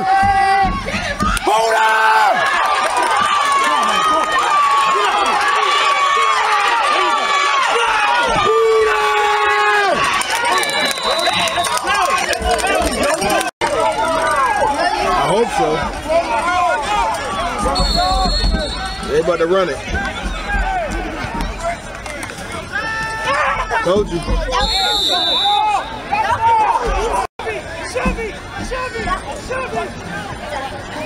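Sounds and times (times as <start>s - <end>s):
spectators yelling and cheering: 0.0s - 31.0s.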